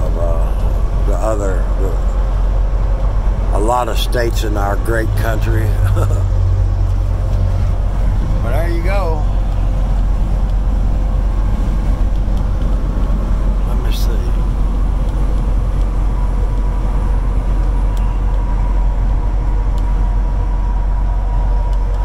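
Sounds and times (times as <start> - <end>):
engine and tyre rumble: 0.0 - 22.0.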